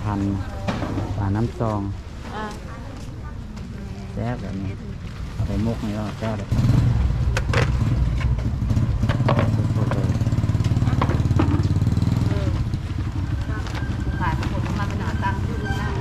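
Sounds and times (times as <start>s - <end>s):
motorcycle engine running: 5.4s - 16.0s.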